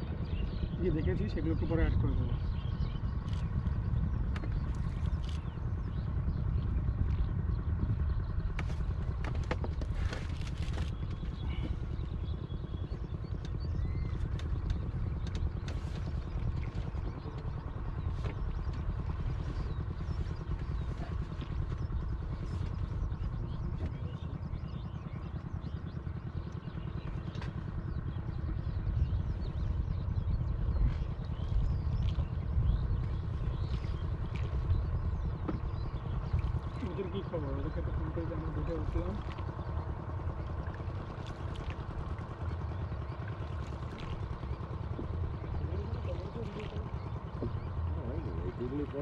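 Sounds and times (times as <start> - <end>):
boat engine rumbling: 0.0 - 49.0.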